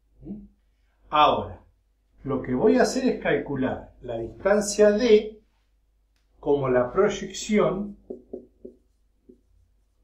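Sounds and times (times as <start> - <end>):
marker writing on whiteboard: 7.8 - 10.0.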